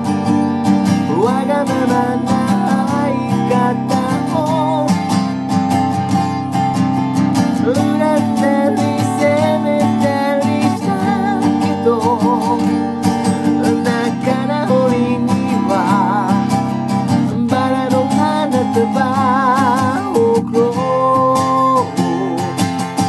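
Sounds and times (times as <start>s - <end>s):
acoustic guitar strumming: 0.0s - 23.0s
person singing with vibrato: 0.9s - 5.4s, 7.6s - 22.8s.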